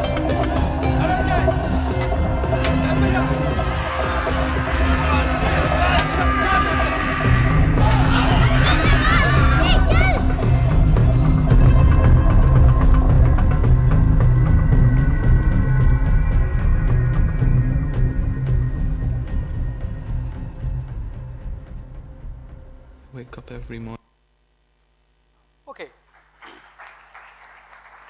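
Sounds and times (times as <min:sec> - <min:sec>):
film soundtrack over speakers: 0:00.0 - 0:24.0.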